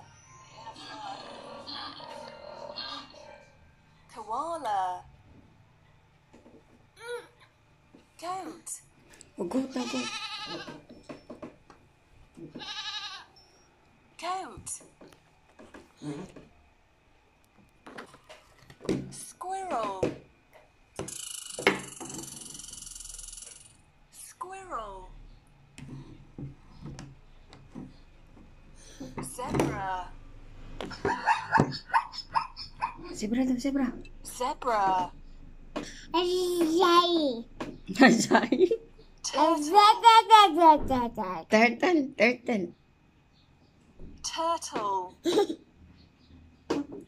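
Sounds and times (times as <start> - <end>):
goat bleating: 9.7 - 10.8, 12.5 - 13.3
zebra barking yelps: 30.9 - 33.2.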